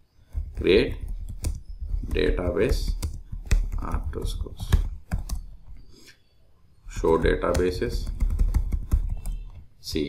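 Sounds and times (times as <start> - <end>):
computer keyboard typing: 0.3 - 5.8, 6.9 - 10.0.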